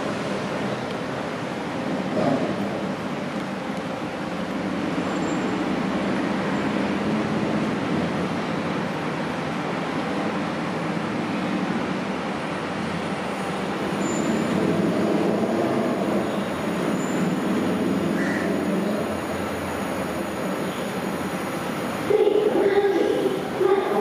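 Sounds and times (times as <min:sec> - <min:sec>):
train wheels rumbling on rail: 0:00.0 - 0:24.0
high wheel squeals: 0:05.0 - 0:05.7, 0:13.2 - 0:21.3.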